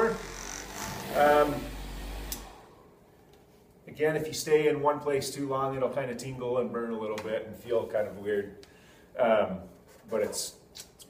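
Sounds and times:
car buffer motor hum: 0.0 - 2.8.

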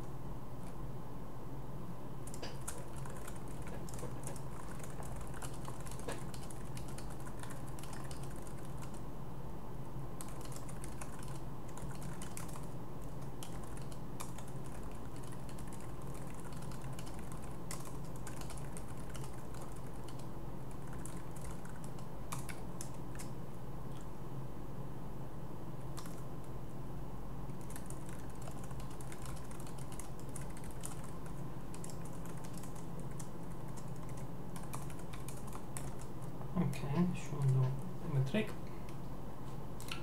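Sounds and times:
steady low hum: 0.0 - 40.0
typing on computer keyboard: 2.3 - 9.0, 10.2 - 23.3, 26.0 - 26.2, 27.6 - 36.1.

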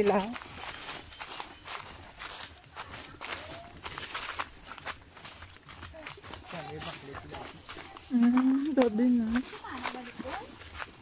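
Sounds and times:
footsteps on dry leaves: 0.0 - 11.0.

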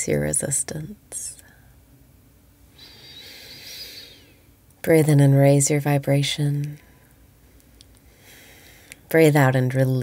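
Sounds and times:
woman breathing softly: 2.7 - 4.5, 6.9 - 9.1.

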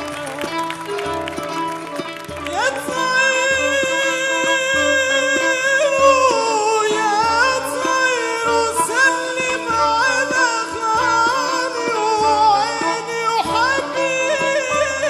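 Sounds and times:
man singing ornamented melody: 2.5 - 15.0.

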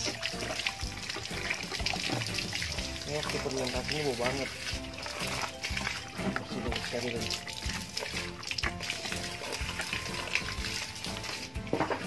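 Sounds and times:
water trickling from a hose: 0.0 - 12.0.

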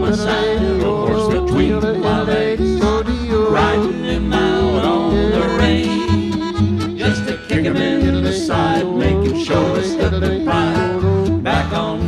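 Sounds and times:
country band playing: 0.0 - 12.0
guitar chords: 0.0 - 12.0
steady bass: 0.0 - 12.0.

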